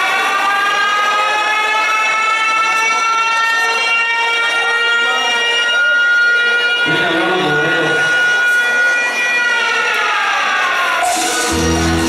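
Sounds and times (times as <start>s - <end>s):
faint crowd: 0.0s - 12.0s
siren-like tone in dance music: 0.0s - 12.0s.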